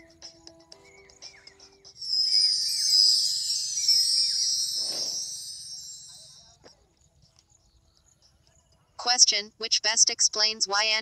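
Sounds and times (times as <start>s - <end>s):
light background music: 0.0s - 3.5s, 5.9s - 11.0s
shimmering chime effect: 2.0s - 6.5s
short whoosh: 4.8s - 5.4s.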